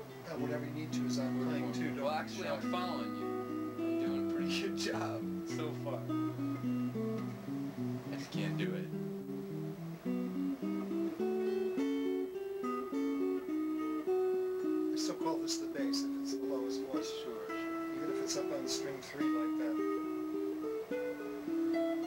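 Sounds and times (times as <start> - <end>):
clean electric guitar picking: 0.0 - 22.0.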